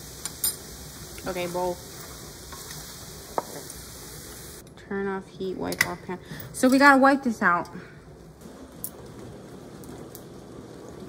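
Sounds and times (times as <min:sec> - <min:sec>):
vegetables sizzling in a frying pan: 0:00.0 - 0:04.6.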